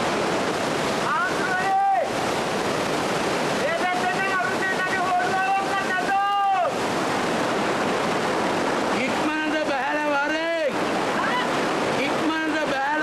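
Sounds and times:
steady rushing noise: 0.0 - 13.0.

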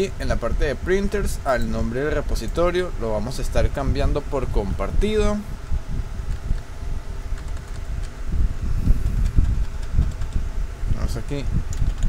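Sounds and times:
faint hum: 0.0 - 12.0
low rumble background noise: 0.0 - 12.0
computer keys clicking: 7.3 - 8.1, 9.1 - 10.4, 11.7 - 12.0.

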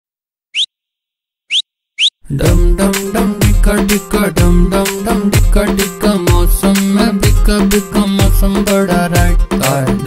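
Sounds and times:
short upward gliding whistles: 1.5 - 2.2
music: 2.3 - 10.0.

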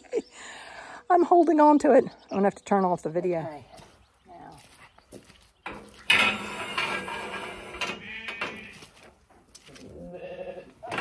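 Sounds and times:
lambs bleating: 8.0 - 8.9, 9.9 - 11.0.

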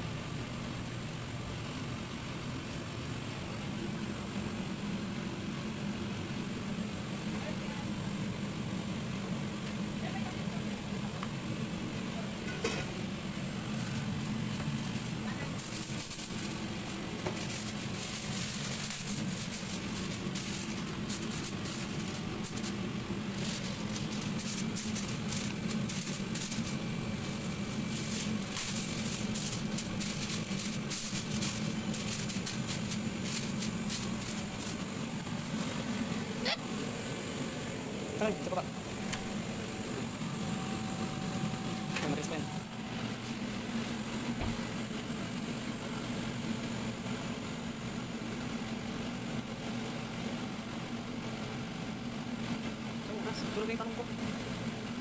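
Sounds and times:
aluminium foil crinkling: 13.7 - 35.9.

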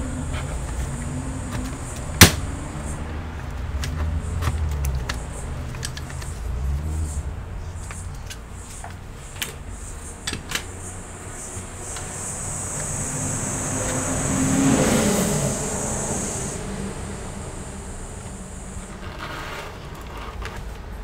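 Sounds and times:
vehicle passing by: 0.0 - 21.0
thin high hiss: 8.5 - 20.0.

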